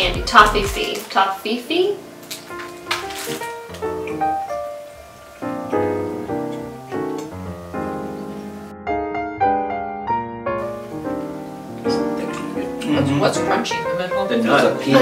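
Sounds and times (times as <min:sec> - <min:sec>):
piano-like keyboard melody: 0:00.0 - 0:15.0.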